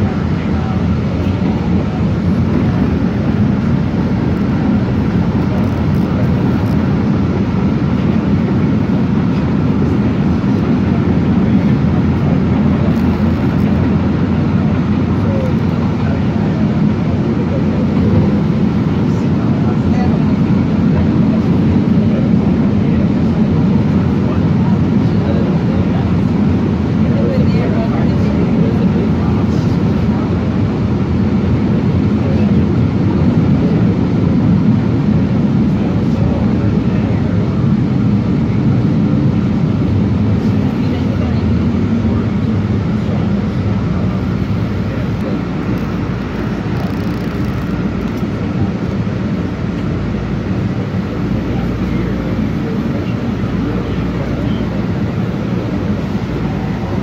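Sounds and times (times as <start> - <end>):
light-rail car rumbling in tunnel: 0.0 - 57.0.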